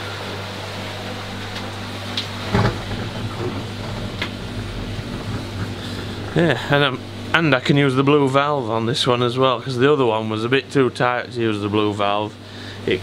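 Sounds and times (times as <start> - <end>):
pond pumps humming: 0.0 - 13.0
water rushing in pipes: 0.0 - 13.0.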